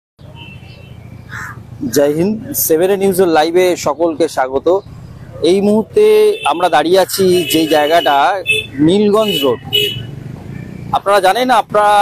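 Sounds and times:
harsh bird call: 0.2 - 1.7
low street background: 0.2 - 12.0.

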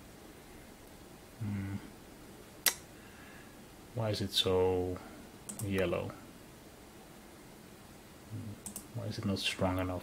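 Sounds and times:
computer mouse clicks: 5.5 - 5.9, 8.6 - 8.9.

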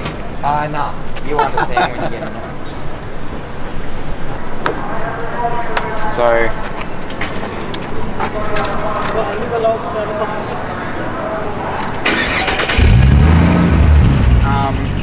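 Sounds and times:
car engine starting and revving: 12.0 - 15.0.

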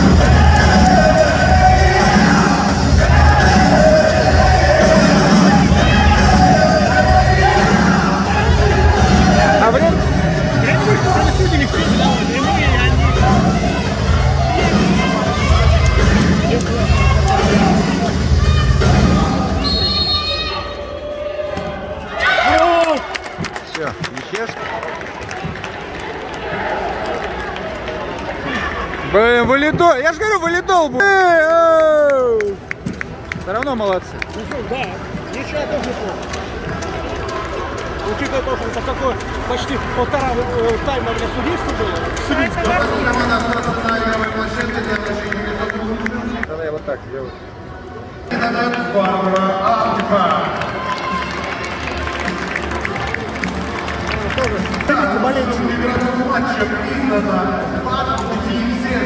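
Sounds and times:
scattered clapping: 0.0 - 5.4, 15.6 - 18.2, 22.4 - 30.0, 30.9 - 46.9, 48.7 - 56.2
music over sound system: 0.0 - 19.6
murmur of crowd voices: 0.0 - 59.0.

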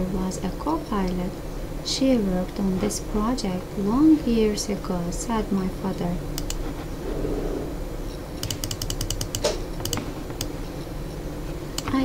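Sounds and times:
computer mouse clicks: 6.4 - 6.6, 8.4 - 10.5, 11.8 - 12.0.

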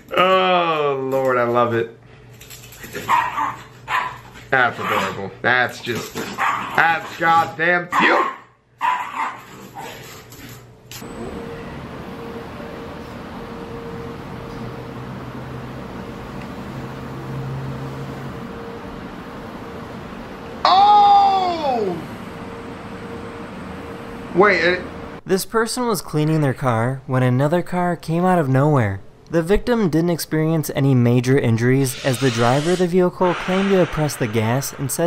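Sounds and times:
dog barking: 3.0 - 5.2, 6.2 - 7.1, 7.9 - 9.9.

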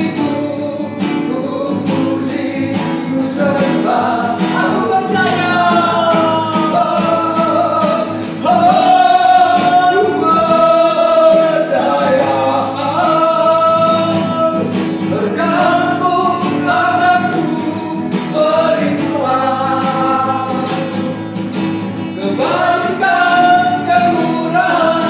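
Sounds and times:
man and woman singing worship song: 0.0 - 25.0
strummed acoustic guitar: 0.0 - 25.0.

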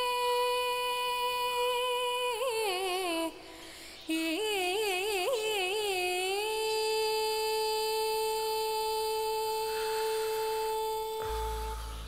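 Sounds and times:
woman singing: 0.0 - 12.0
low drone: 9.7 - 12.0.

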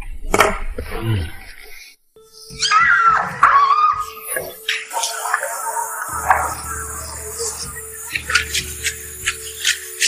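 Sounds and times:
held note of background music: 2.2 - 10.0
woman squealing with delight: 2.6 - 4.2.

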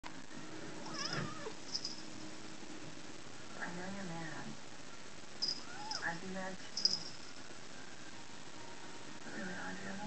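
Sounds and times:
cat meowing: 0.8 - 1.6, 5.5 - 6.1.

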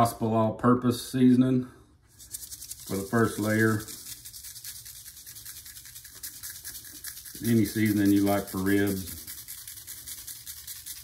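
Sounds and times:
seasoning rattling in shaker bottle: 2.1 - 11.0.

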